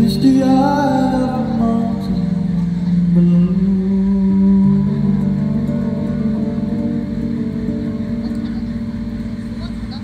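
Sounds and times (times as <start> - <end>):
guitar picked pattern: 0.0 - 10.0.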